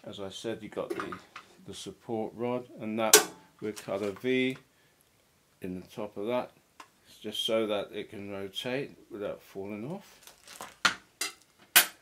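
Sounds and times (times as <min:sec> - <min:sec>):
plastic rustling: 0:03.6 - 0:04.3, 0:10.0 - 0:11.7.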